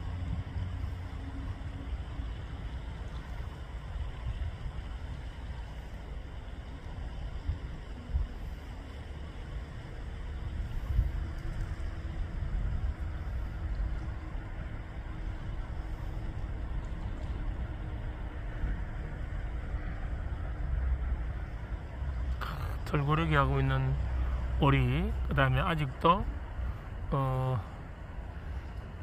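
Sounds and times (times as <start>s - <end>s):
low outdoor rumble: 0.0s - 29.0s.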